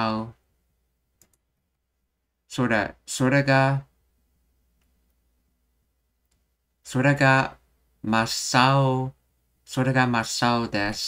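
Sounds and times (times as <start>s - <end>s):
person speaking: 0.0s - 0.4s, 2.4s - 4.0s, 6.8s - 11.0s
computer mouse clicks: 1.2s - 1.5s.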